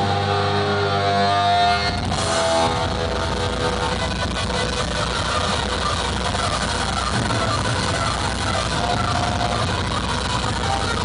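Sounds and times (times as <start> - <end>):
crowd cheering and clapping: 0.0 - 11.0
electric guitar chord: 0.0 - 11.0
low amplifier hum: 0.0 - 11.0.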